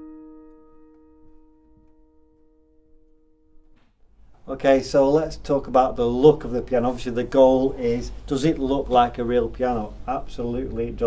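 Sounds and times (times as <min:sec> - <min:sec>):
digital piano chord ringing: 0:00.0 - 0:03.8.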